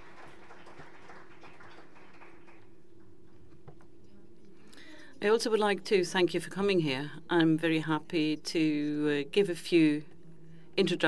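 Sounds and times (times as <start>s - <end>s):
light clapping: 0.0s - 2.7s
faint room hum: 0.0s - 11.0s.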